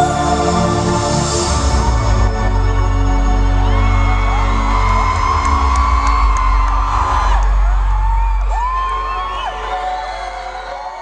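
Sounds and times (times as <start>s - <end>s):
live concert music with deep bass: 0.0s - 11.0s
fans screaming and whooping: 3.2s - 11.0s.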